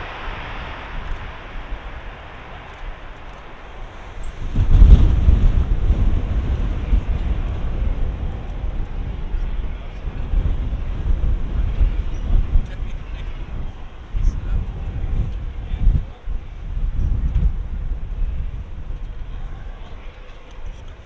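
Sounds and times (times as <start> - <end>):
jet landing rumble: 0.0 - 21.0.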